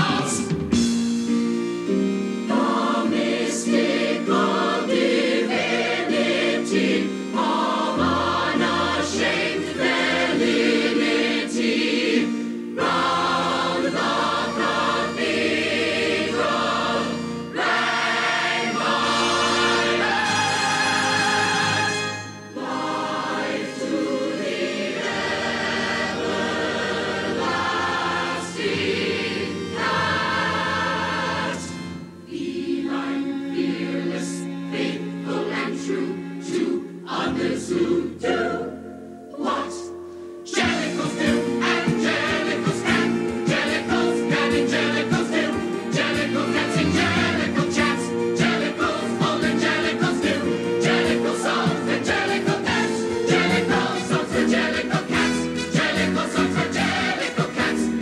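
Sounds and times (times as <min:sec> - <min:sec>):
ensemble singing in chorus: 0:00.0 - 0:00.8, 0:02.5 - 0:58.0
instrumental backing: 0:00.0 - 0:58.0.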